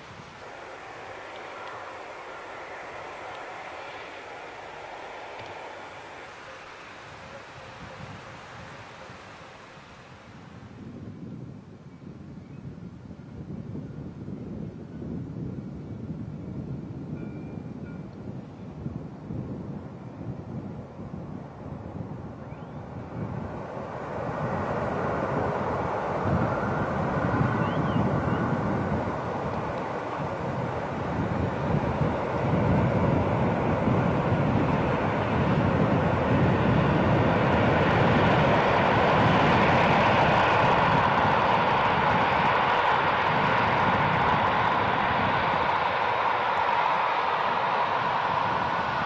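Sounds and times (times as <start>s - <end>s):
train wheels on rails: 0.0s - 10.2s, 22.9s - 49.0s.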